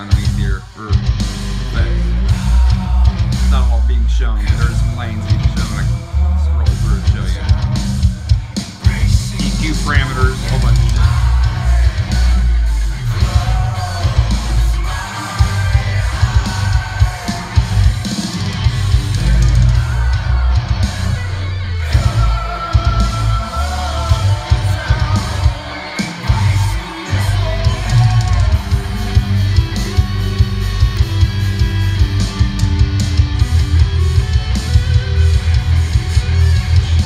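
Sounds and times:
heavy rock music: 0.0s - 37.0s
person singing: 1.7s - 31.1s.

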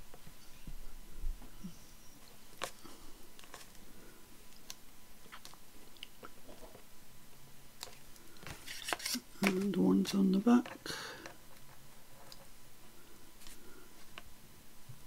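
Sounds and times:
woman's voice: 9.4s - 10.7s.

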